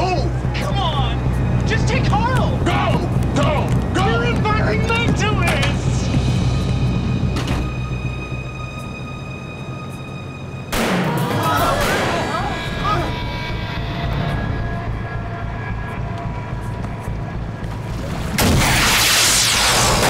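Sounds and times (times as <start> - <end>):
voices: 0.0 - 6.1, 11.1 - 17.6
tense music with high tones: 0.0 - 20.0
loud boom: 18.4 - 20.0.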